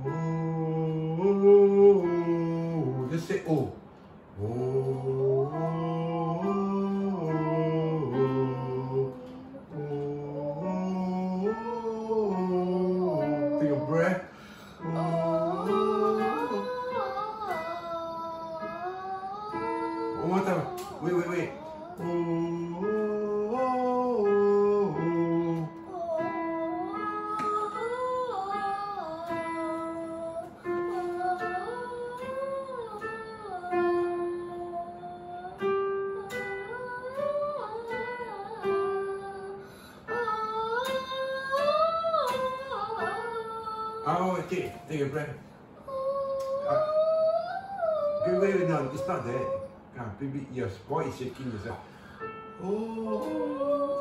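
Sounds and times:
electronic keyboard notes: 0.0 - 54.0
girl singing vocal warm-up: 0.0 - 54.0.

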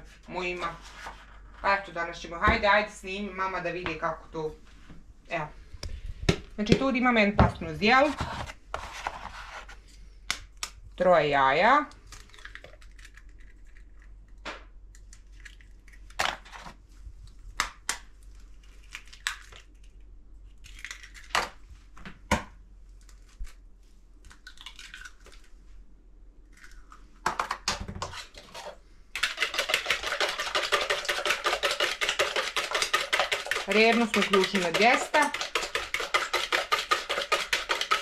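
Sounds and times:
eggs being beaten in bowl: 28.1 - 38.0.

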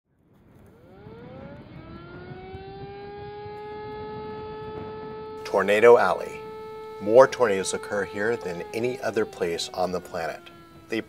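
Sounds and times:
tornado siren winding up: 0.3 - 11.0.

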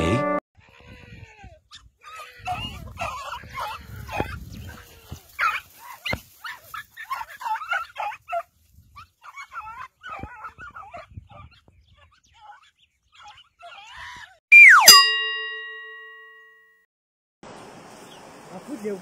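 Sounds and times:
dogs yelping and whining: 1.2 - 15.0.

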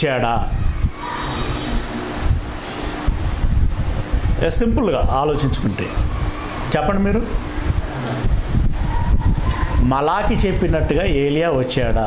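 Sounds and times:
speech: 0.0 - 0.6, 4.4 - 6.0, 6.7 - 7.4, 9.8 - 12.0
wind hitting microphone: 0.0 - 12.0.

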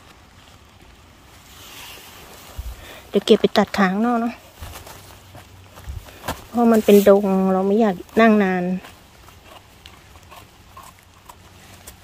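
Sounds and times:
knife scraping mushroom: 6.6 - 12.0.

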